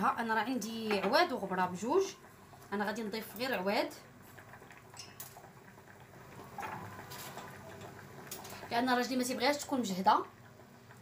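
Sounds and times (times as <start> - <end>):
water bubbling in a pot: 0.0 - 11.0.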